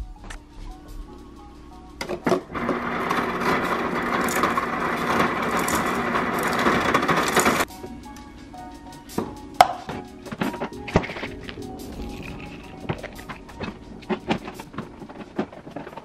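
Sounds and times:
ice dispenser rattling crushed ice: 2.3s - 7.7s.

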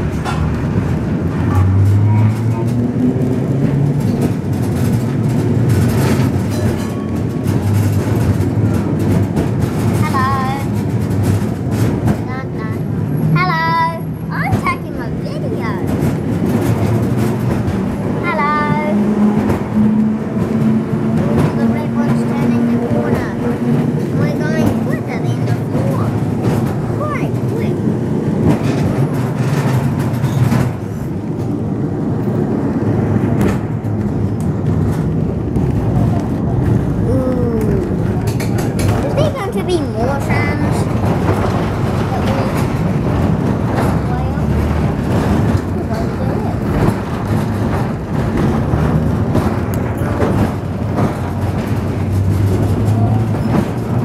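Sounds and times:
tram car rattling: 0.0s - 54.0s
tram motor hum: 0.0s - 54.0s
wheels knocking on rails: 0.0s - 54.0s.

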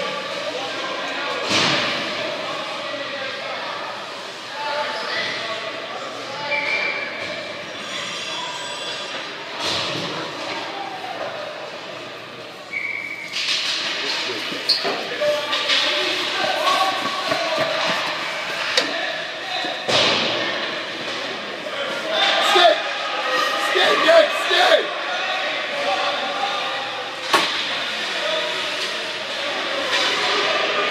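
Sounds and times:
spectators talking and calling out: 0.0s - 30.9s
hockey sticks and puck knocking: 13.4s - 19.0s.

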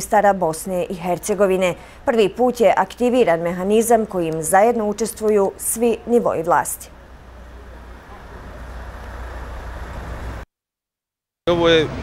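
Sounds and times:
street traffic: 0.0s - 10.4s
idling vehicle engines: 1.0s - 10.4s.

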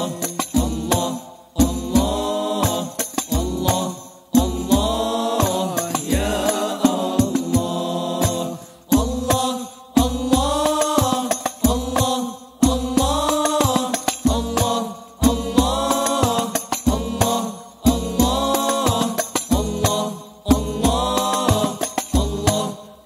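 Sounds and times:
men singing in unison: 0.0s - 23.0s.

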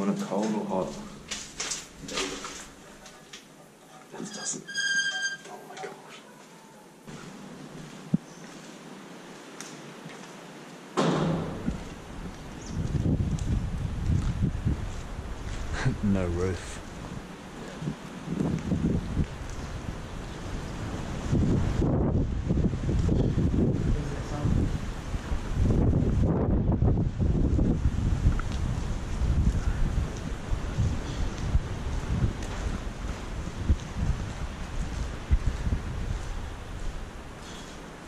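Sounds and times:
wind buffeting microphone: 11.2s - 38.0s.

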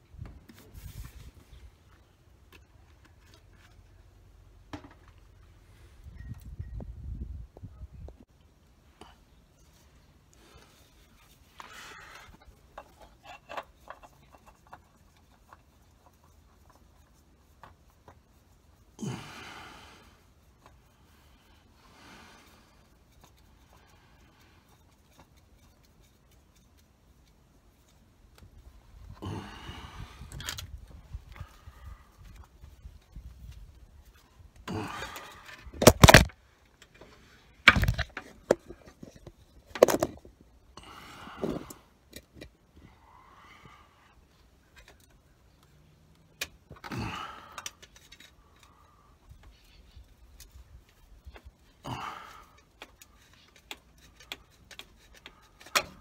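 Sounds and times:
tools clinking and scraping metal: 12.2s - 16.8s.

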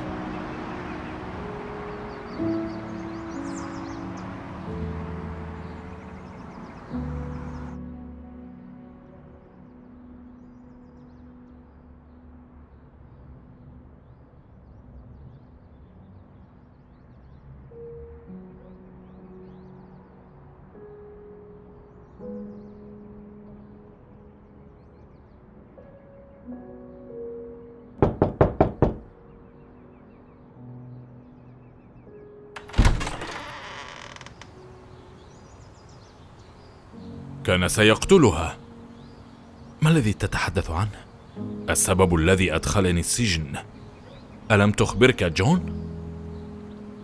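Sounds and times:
low musical drone: 0.0s - 28.0s, 34.5s - 47.0s
quick knocks on a door: 28.0s - 29.1s.

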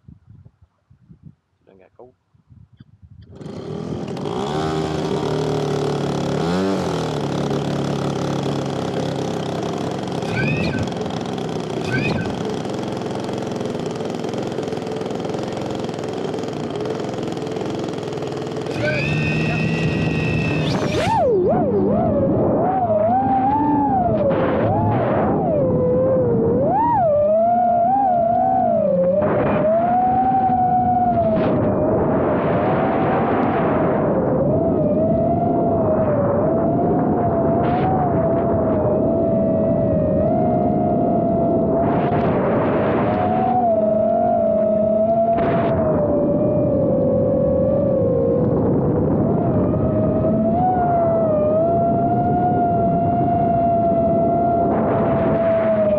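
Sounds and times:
model plane engine running: 3.2s - 24.2s
quadcopter motors whining: 3.2s - 55.9s.

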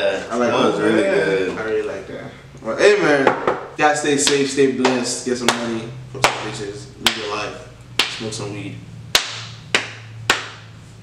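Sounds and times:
hand claps with room echo: 3.2s - 8.4s, 9.1s - 10.8s.

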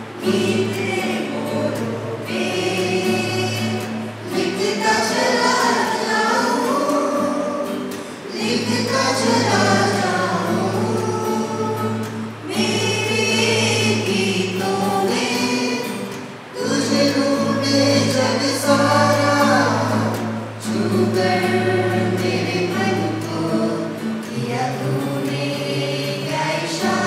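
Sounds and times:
acoustic guitar: 0.0s - 27.0s
mixed choir singing: 0.0s - 27.0s.

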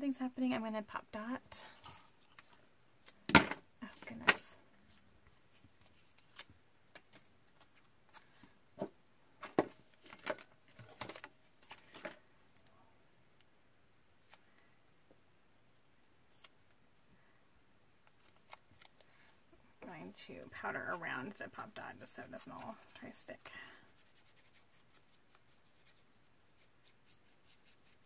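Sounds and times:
paper handling clicks and crinkles: 4.0s - 8.6s, 9.4s - 12.7s, 18.0s - 19.3s.

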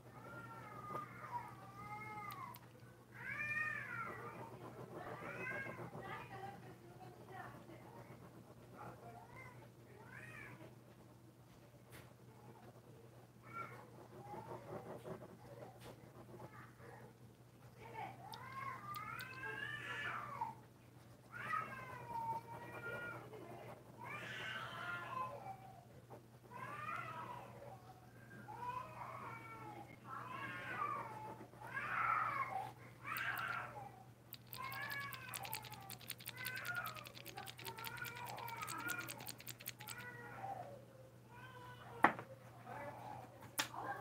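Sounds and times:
low electrical hum: 0.0s - 44.0s
rapid fine clicking: 18.3s - 19.4s, 34.3s - 40.1s
cat meowing: 33.1s - 33.7s, 34.3s - 40.2s.

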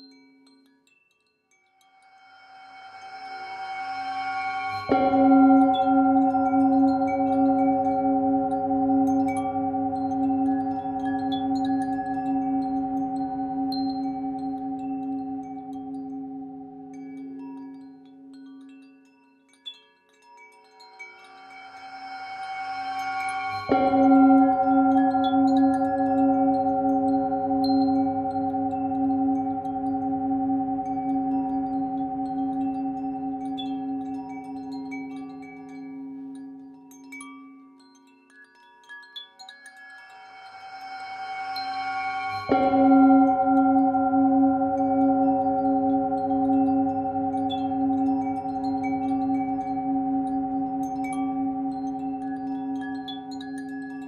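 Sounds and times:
wind chimes tinkling: 0.0s - 54.0s
singing bowl ringing: 1.8s - 18.7s, 20.4s - 37.8s, 39.4s - 54.0s.

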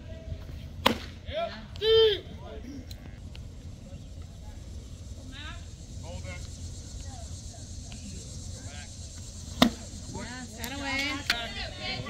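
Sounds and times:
low steady rumble: 0.0s - 12.0s
spectators calling and shouting: 0.0s - 12.0s
baseball smacking into mitt: 0.8s - 1.2s, 9.6s - 9.9s.

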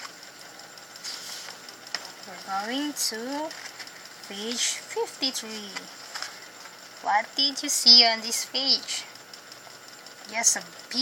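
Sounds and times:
steady background hum: 0.0s - 11.0s
paper page rustling: 1.0s - 1.6s, 5.8s - 6.4s.

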